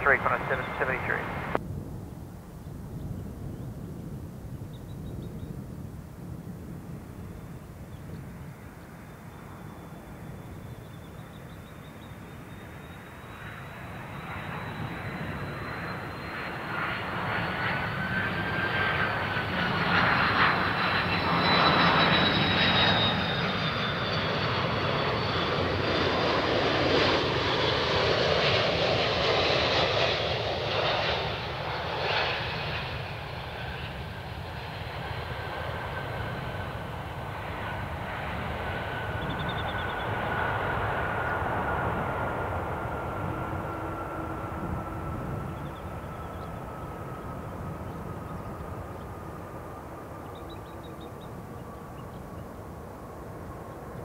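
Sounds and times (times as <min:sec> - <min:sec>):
jet landing with fan whine: 0:00.0 - 0:54.0
rushing jet engine noise: 0:00.0 - 0:54.0.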